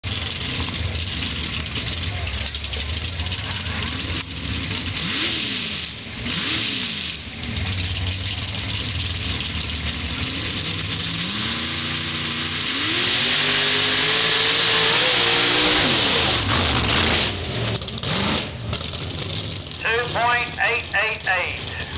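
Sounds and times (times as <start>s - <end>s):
truck engine revving: 0.1s - 21.9s.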